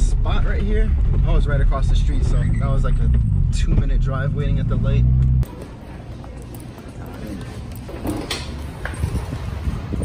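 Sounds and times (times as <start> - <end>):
steady low rumble: 0.0 - 5.5.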